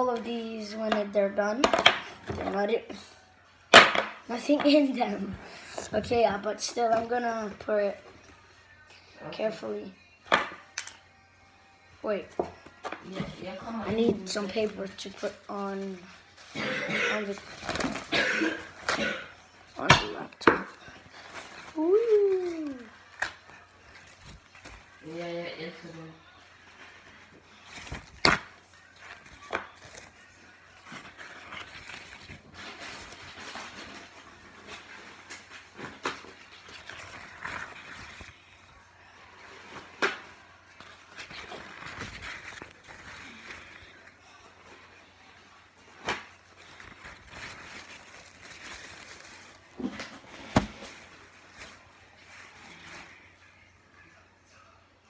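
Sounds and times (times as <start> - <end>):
rustling: 20.9 - 53.4.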